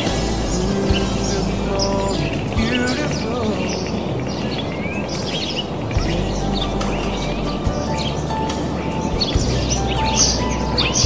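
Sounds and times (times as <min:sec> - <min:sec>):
wild birds chirping: 0:00.0 - 0:11.0.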